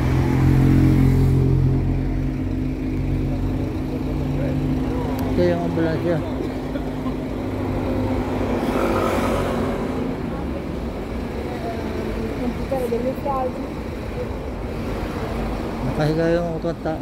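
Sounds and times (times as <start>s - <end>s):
vehicle engine humming: 0.0s - 17.0s
vehicle passing: 0.0s - 17.0s.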